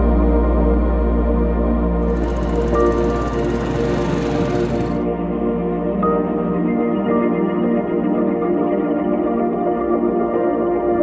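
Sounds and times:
background music: 0:00.0 - 0:11.0
small motorcycle engines passing: 0:02.0 - 0:05.1.

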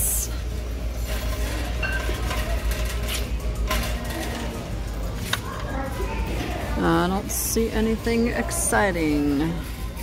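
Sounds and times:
faint background music: 0:00.0 - 0:10.0
shopping cart rumbling: 0:00.1 - 0:10.0.

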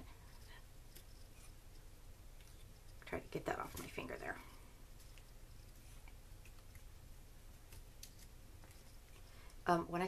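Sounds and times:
faint clicks and paper rustles: 0:00.2 - 0:09.6.

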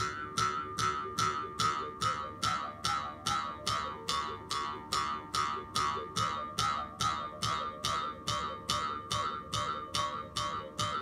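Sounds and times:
mouth harp plucked with drone: 0:00.0 - 0:11.0.

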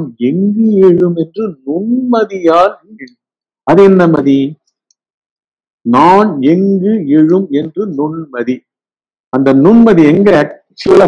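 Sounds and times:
man speaking: 0:00.0 - 0:03.1, 0:03.7 - 0:04.7, 0:05.9 - 0:08.6, 0:09.4 - 0:11.0.

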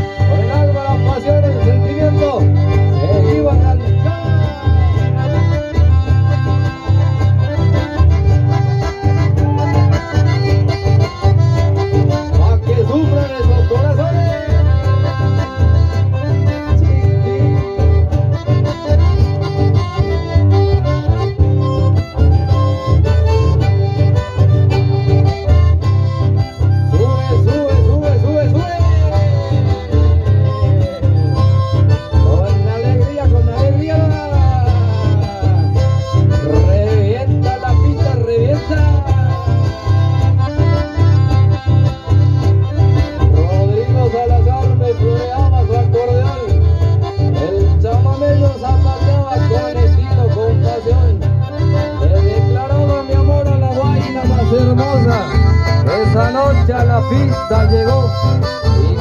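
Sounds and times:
accordion melody: 0:00.0 - 0:59.0
amplified acoustic guitar: 0:00.0 - 0:59.0.

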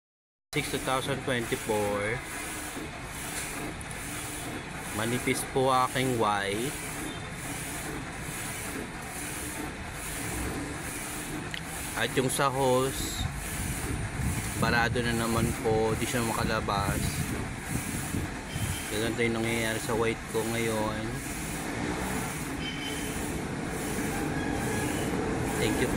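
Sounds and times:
inkjet printer carriage moving: 0:00.6 - 0:25.9.

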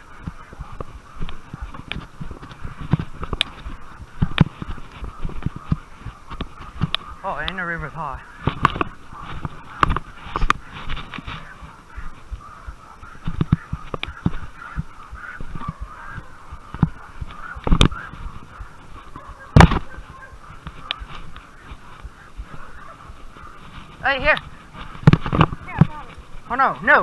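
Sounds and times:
distant animal calls: 0:00.0 - 0:27.0.

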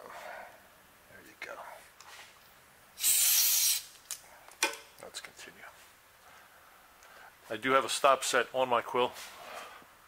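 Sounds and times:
compressed air hiss: 0:03.0 - 0:04.0.

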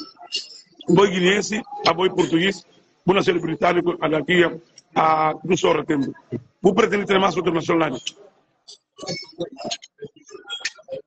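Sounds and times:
man speaking: 0:00.8 - 0:08.2.

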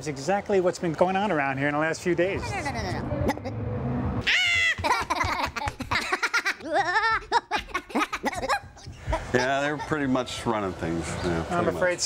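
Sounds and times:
high-pitched cartoon gibberish voices: 0:04.2 - 0:05.6.

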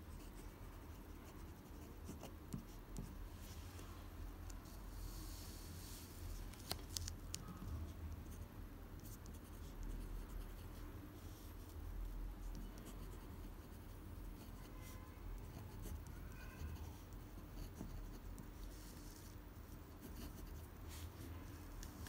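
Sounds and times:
pen nib scratching paper: 0:00.2 - 0:03.2, 0:09.0 - 0:11.8, 0:12.4 - 0:21.0.

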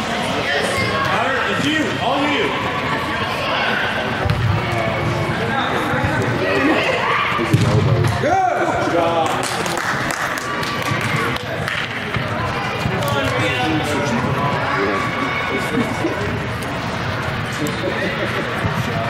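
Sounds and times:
ball kicks and thuds: 0:04.2 - 0:04.6.

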